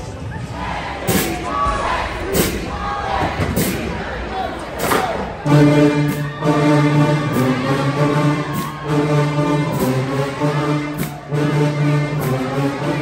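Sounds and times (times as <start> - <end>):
crowd shouting and singing: 0.0 - 13.0
brass band chords: 5.2 - 13.0.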